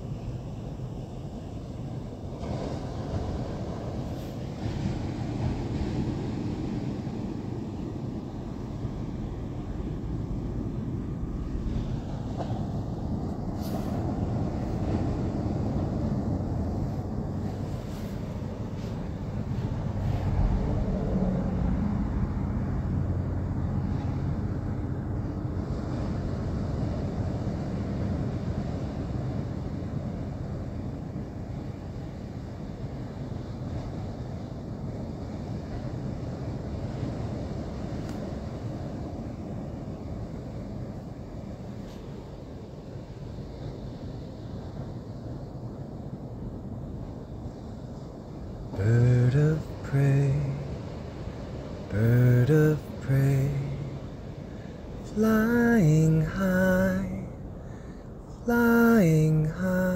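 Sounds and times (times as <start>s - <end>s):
faint hum: 0.0s - 59.9s
steady low rumble: 0.0s - 59.9s.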